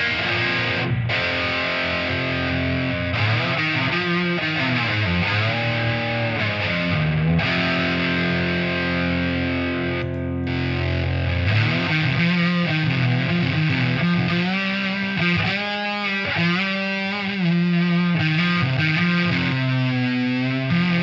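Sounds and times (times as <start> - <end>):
distorted electric guitar riffs: 0.0 - 21.0.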